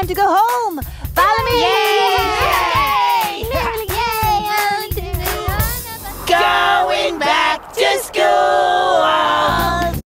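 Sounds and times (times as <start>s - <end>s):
backing music with a beat: 0.0s - 6.8s
children singing together: 2.1s - 9.9s.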